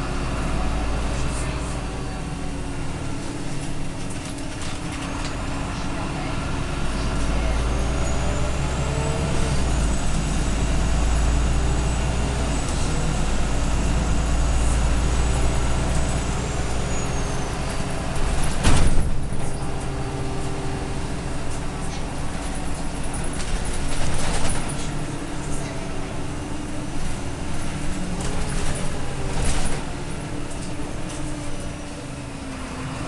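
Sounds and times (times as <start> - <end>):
bus engine drone: 0.0 - 33.0.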